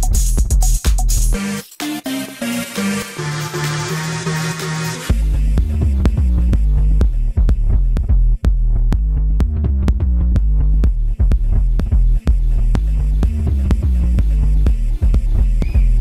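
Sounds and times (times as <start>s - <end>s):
techno track: 0.0s - 16.0s.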